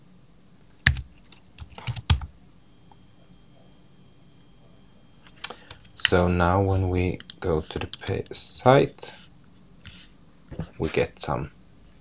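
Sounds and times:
computer keyboard keystrokes: 0.8s - 2.3s, 7.2s - 8.4s.

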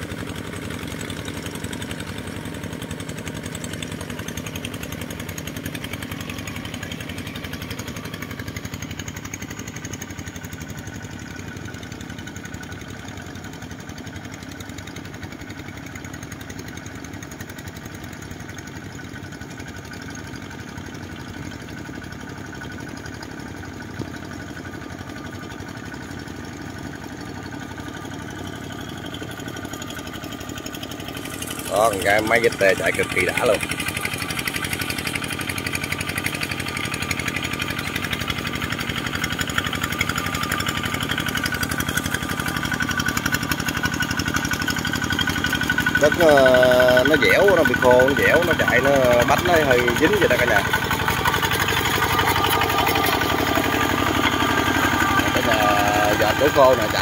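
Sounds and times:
diesel engine running steadily: 0.0s - 57.0s.

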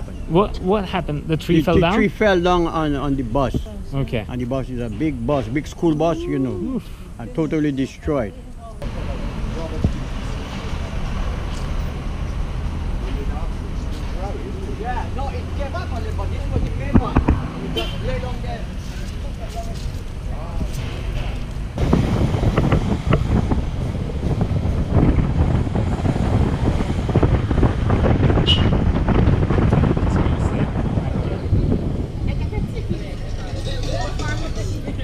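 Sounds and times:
van road noise: 0.0s - 35.0s
wind buffeting microphone: 8.8s - 35.0s.

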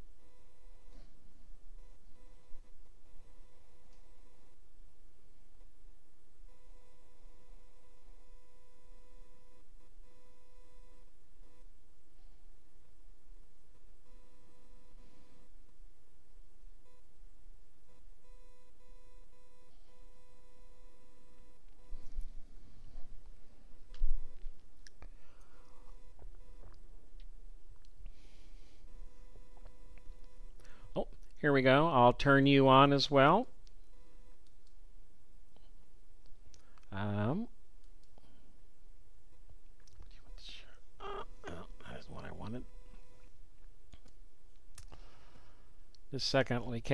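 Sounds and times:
low electrical hum: 0.0s - 46.9s
man whispering: 40.0s - 42.7s.

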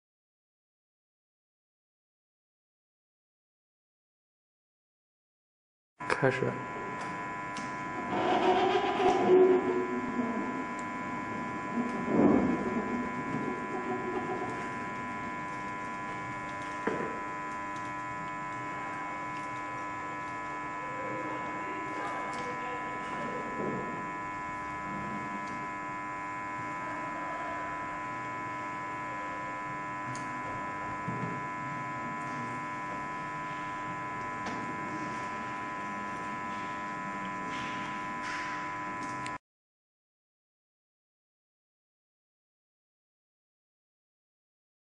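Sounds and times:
steady electrical hum: 6.0s - 39.4s
held tones: 7.5s - 20.8s.

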